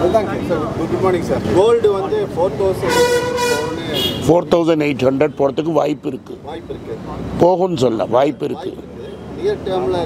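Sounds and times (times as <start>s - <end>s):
man talking: 0.0s - 10.0s
vehicle horn honk: 2.8s - 4.3s.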